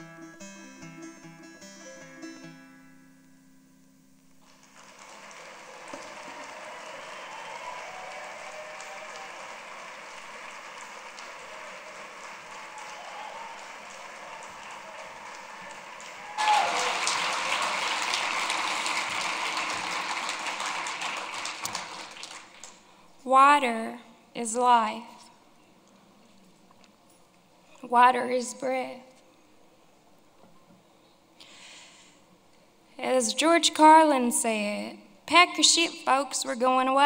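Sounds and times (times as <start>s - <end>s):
audience applauding: 4.4s - 22.9s.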